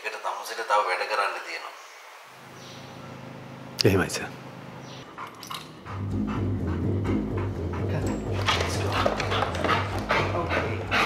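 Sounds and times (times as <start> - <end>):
music with pulsing bass: 5.9 - 11.0.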